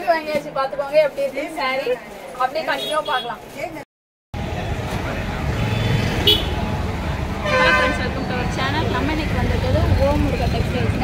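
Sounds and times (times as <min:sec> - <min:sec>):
traffic engines rumbling: 0:00.0 - 0:11.0
vehicle horns honking: 0:05.5 - 0:06.7, 0:07.4 - 0:08.2.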